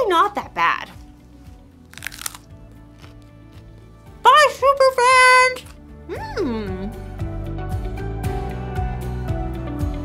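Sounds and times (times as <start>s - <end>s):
quiet background music: 0.0s - 10.0s
crunching raw broccoli: 1.8s - 3.9s.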